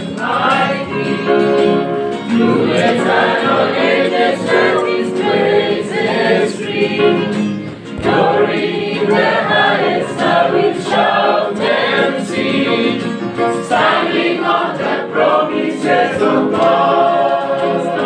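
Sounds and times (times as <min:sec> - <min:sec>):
choir singing gospel song: 0:00.0 - 0:18.0.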